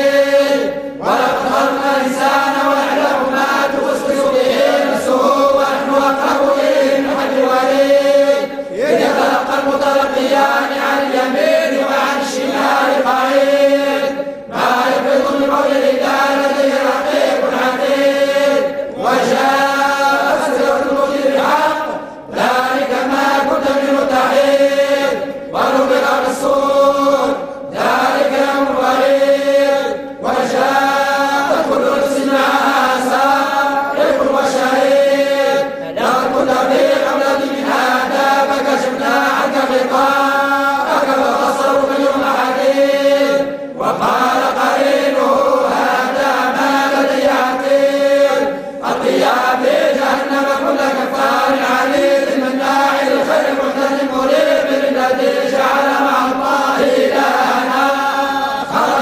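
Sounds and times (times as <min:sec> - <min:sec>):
men chanting in unison: 0:00.0 - 0:59.0.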